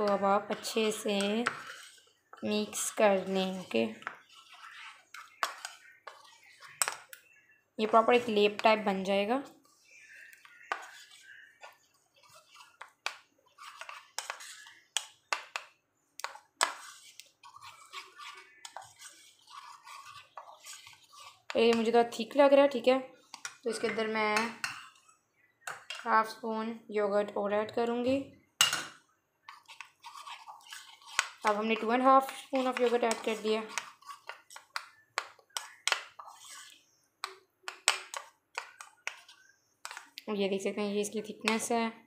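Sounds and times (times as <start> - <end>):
spoon scraping ceramic bowl: 0.0 - 26.2, 28.6 - 40.2.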